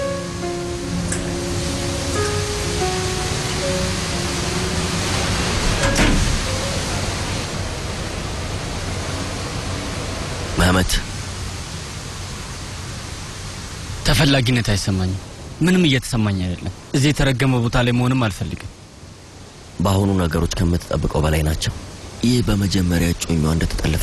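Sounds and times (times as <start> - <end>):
soft background score: 0.0 - 11.2
steady hiss-like noise: 0.0 - 24.0.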